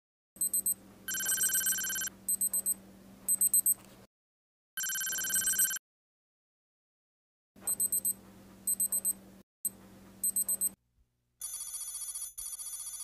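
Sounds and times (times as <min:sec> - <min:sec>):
electronic beeping: 0:00.4 - 0:03.8, 0:07.7 - 0:09.2.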